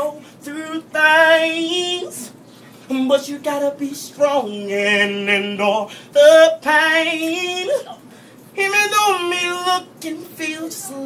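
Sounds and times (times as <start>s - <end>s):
man singing unaccompanied: 0.0s - 11.0s.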